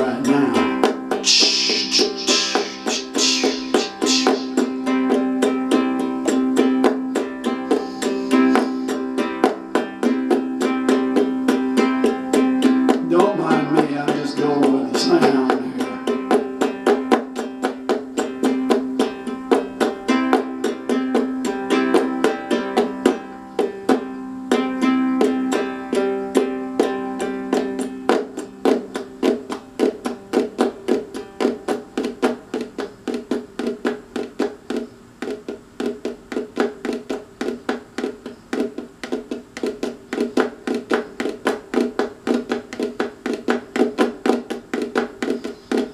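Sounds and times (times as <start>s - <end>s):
ukulele strummed fast: 0.0s - 45.9s.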